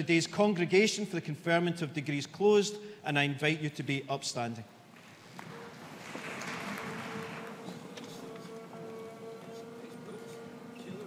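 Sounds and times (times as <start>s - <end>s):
audience rising rustling: 4.9s - 11.0s.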